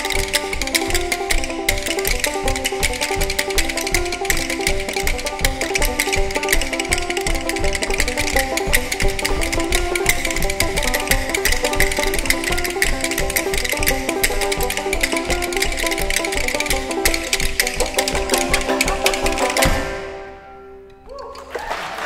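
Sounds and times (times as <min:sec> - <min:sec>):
banjo picking fast tune: 0:00.0 - 0:20.9
rhythm bones clacking: 0:00.0 - 0:21.8.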